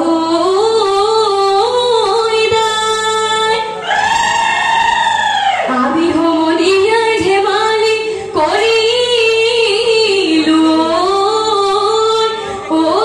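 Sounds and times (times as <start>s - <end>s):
women singing through a pa: 0.0s - 4.0s, 5.4s - 13.0s.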